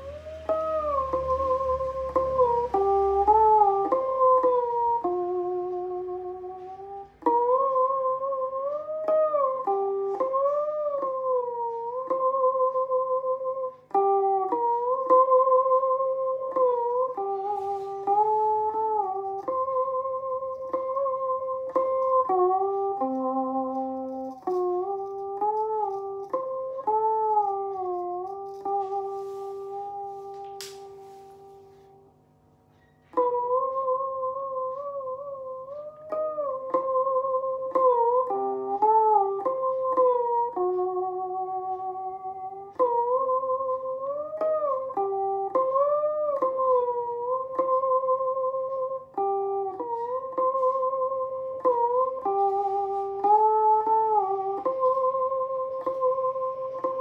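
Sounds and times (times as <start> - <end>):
monochord plucked melody: 0.0 - 32.1, 32.7 - 57.0.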